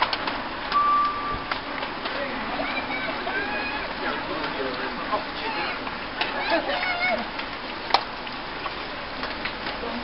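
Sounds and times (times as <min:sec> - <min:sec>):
bicycles riding on wet road: 0:00.0 - 0:10.0.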